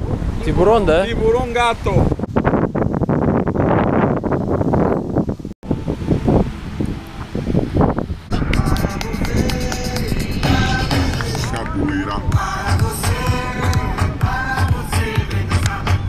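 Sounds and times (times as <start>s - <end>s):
gusty wind on microphone: 0.0s - 16.0s
music: 8.3s - 16.0s.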